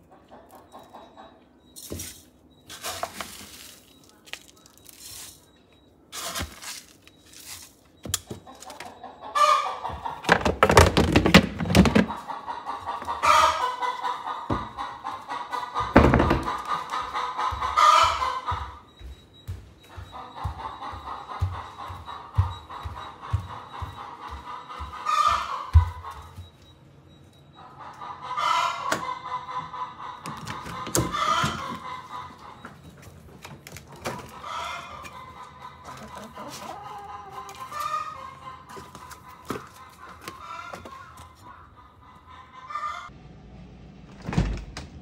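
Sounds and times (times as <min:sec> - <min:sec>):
chickens calling loudly: 0:00.0 - 0:43.2
footsteps on wooden floor: 0:15.8 - 0:26.6.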